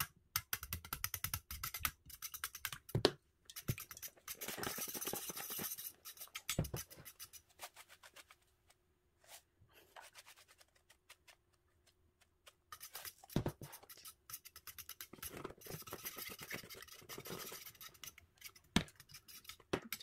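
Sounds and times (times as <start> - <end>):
whisk beating eggs in metal bowl: 0.3 - 7.5, 12.7 - 20.0
whisk knocking against bowl: 0.4 - 7.2.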